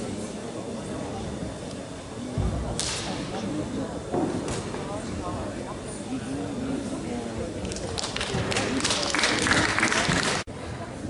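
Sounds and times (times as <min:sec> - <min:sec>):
murmur of voices: 0:00.0 - 0:11.0
sharp slap-like crack: 0:02.8 - 0:03.2.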